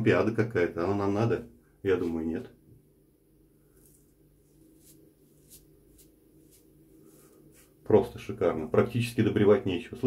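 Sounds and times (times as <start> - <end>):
razor scraping stubble: 3.8 - 7.7.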